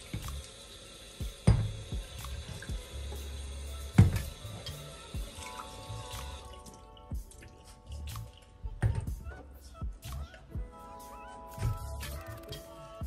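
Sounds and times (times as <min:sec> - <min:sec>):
background music: 0:00.0 - 0:13.0
knock on sink: 0:01.4 - 0:01.8, 0:04.0 - 0:04.3.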